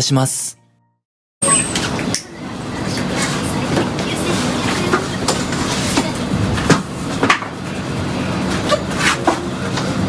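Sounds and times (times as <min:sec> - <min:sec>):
outdoor background rumble: 0:01.4 - 0:10.0.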